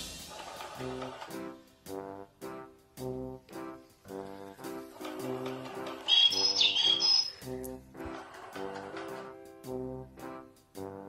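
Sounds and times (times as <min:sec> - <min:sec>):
background music with brass: 0:00.0 - 0:11.0
high bird-like chirping: 0:06.0 - 0:07.4.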